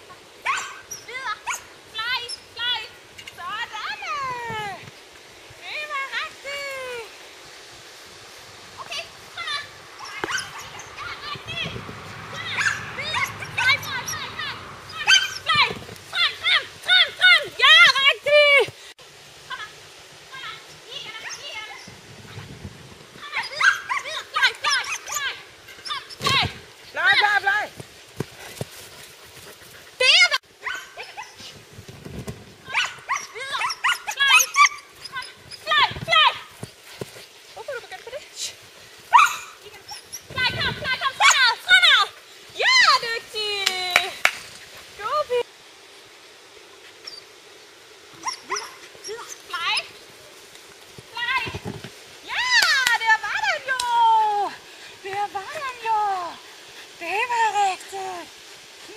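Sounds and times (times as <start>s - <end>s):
dog yipping and barking: 0.4s - 1.7s, 10.0s - 11.2s, 12.4s - 16.4s, 23.3s - 26.2s, 30.6s - 31.4s, 32.7s - 35.8s, 39.1s - 40.4s, 48.2s - 49.9s
dog barking: 10.0s - 10.9s, 12.5s - 14.2s, 14.9s - 15.6s.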